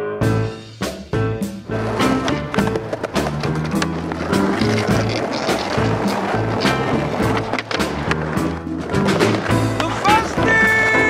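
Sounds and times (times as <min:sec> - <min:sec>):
music with bass line: 0:00.0 - 0:11.0
skateboard wheels rolling on pavement: 0:00.8 - 0:11.0
skateboard clacks: 0:01.5 - 0:11.0.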